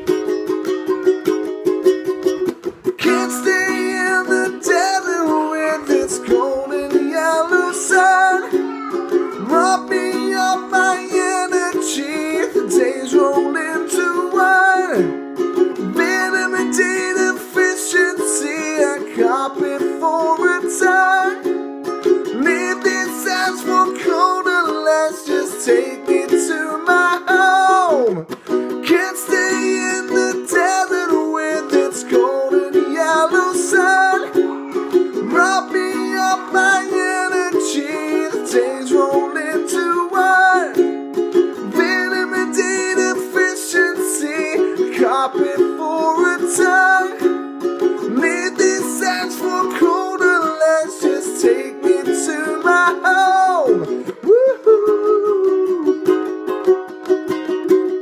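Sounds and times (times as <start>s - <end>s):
ukulele melody with slides: 0.0s - 58.0s
ukulele strumming chords: 0.0s - 58.0s.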